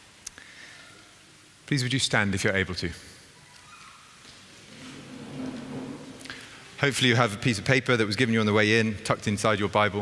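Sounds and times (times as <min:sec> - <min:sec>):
people rustling and shuffling standing: 0:03.2 - 0:06.9.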